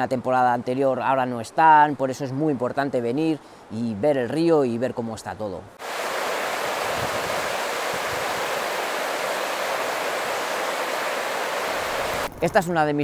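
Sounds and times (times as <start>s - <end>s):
river rushing over rocks: 5.8s - 12.3s.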